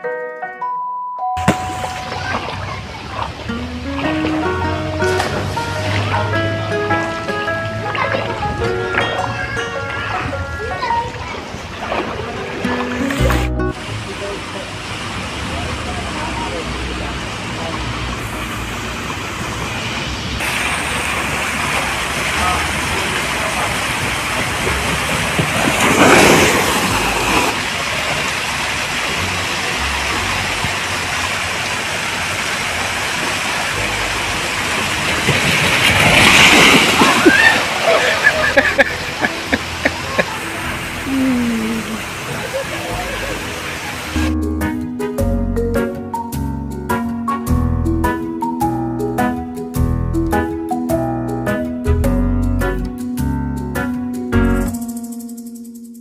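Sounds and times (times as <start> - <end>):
pool water sloshing: 1.4 - 9.4, 10.8 - 44.3
water surges: 1.4 - 44.3.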